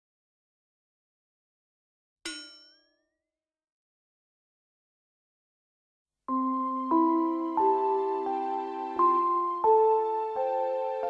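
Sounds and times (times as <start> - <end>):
bright metallic ding: 2.3 - 2.8.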